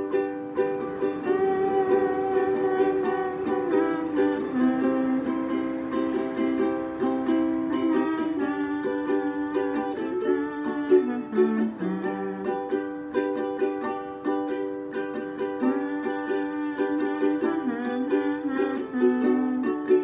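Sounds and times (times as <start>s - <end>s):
ukulele strumming: 0.0s - 20.0s.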